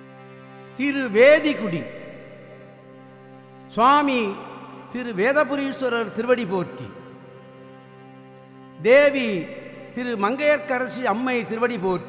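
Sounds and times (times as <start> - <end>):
sustained musical drone: 0.0 - 12.0
man speaking: 0.8 - 2.0, 3.7 - 7.0, 8.8 - 12.0.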